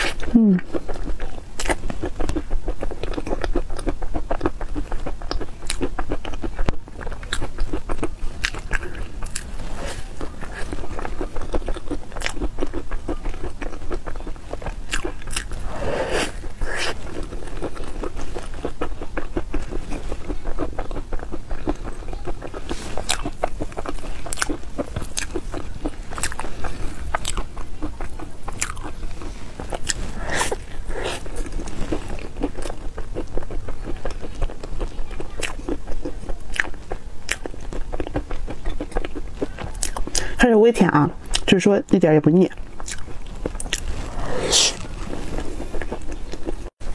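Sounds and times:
biting and chewing cake: 0.0s - 46.9s.

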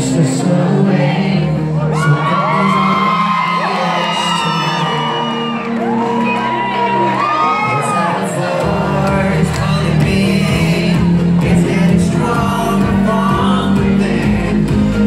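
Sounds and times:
live pop band playing: 0.0s - 15.0s
crowd whooping and screaming: 1.4s - 10.5s.

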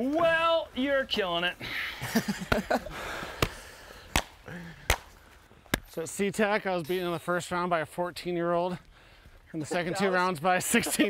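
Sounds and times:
person laughing: 1.7s - 3.1s, 9.7s - 11.0s.

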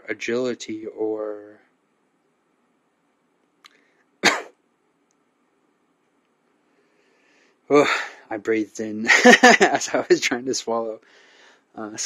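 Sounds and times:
faint click: 3.4s - 4.1s, 5.0s - 5.3s
man coughing: 4.2s - 4.6s.

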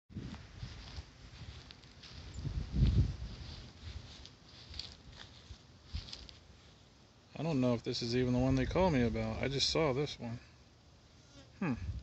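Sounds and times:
wind buffeting microphone: 0.1s - 4.2s, 11.8s - 12.0s
footsteps through grass: 0.1s - 9.2s.

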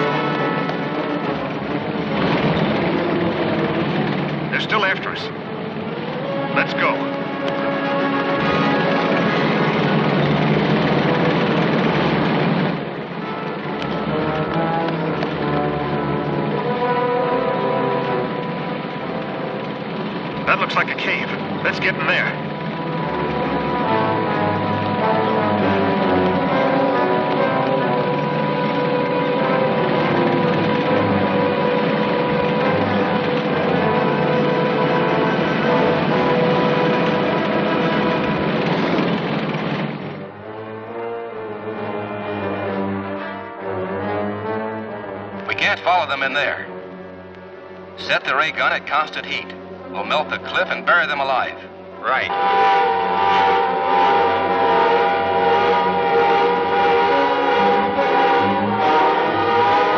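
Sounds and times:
orchestral action music: 0.0s - 59.9s
vehicle engine: 0.0s - 59.9s.

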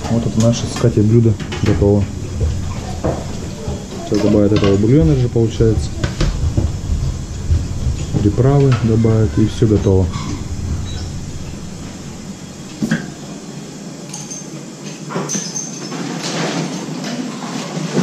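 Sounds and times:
steady kitchen hiss: 0.0s - 18.0s
metal spoons clinking on bowls: 14.1s - 17.0s.

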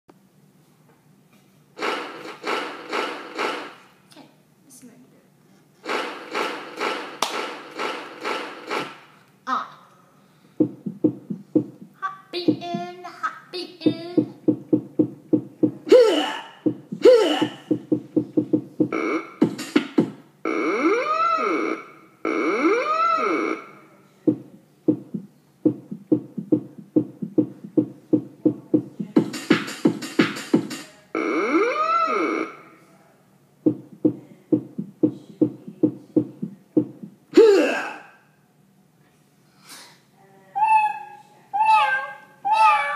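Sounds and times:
programmed drum beat: 10.6s - 13.0s, 13.8s - 15.9s, 16.6s - 20.2s, 24.3s - 31.0s, 33.7s - 37.2s
electronic keyboard noisy notes: 16.7s - 19.8s.

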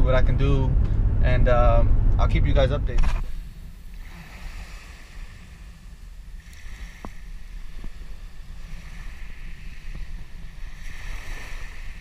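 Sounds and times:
wind buffeting microphone: 0.0s - 12.0s
small waves lapping shoreline: 3.2s - 12.0s.

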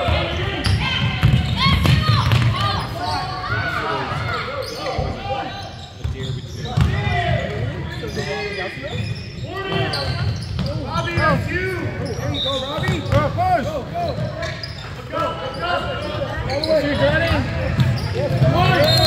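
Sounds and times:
sneakers squeaking on hardwood: 4.5s - 13.4s, 14.0s - 19.0s.

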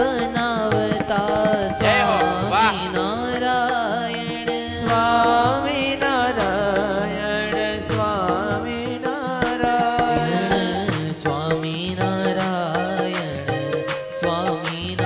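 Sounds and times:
harmonium chords: 0.0s - 14.9s
man singing: 0.0s - 15.0s
tabla strokes: 0.0s - 15.0s
bamboo flute: 1.8s - 2.9s.

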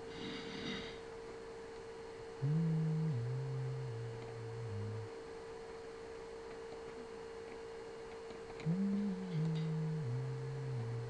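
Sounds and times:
faint electrical whine: 0.0s - 11.0s
person humming low notes: 2.2s - 5.3s, 8.6s - 11.0s.

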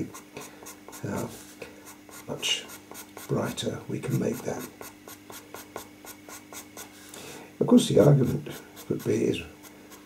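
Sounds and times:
pencil scratching on paper: 0.0s - 7.0s, 8.1s - 10.0s.

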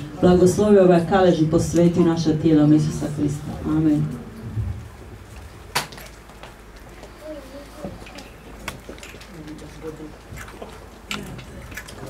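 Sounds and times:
voices murmuring: 7.0s - 12.0s.

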